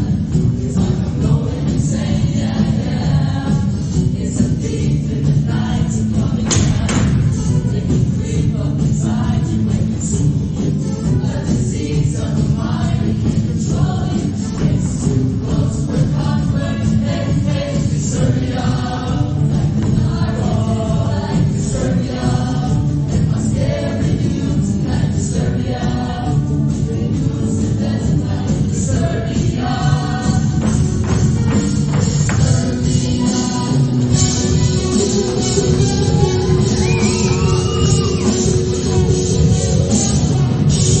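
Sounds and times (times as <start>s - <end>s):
musical accompaniment: 0.0s - 41.0s
show choir singing: 0.0s - 41.0s.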